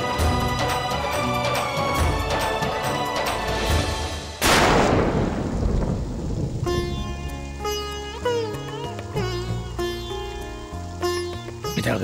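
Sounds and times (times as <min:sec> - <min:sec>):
music: 0:00.0 - 0:04.4, 0:06.6 - 0:12.0
heavy rain: 0:00.0 - 0:12.0
thunder rumbling: 0:04.2 - 0:07.8.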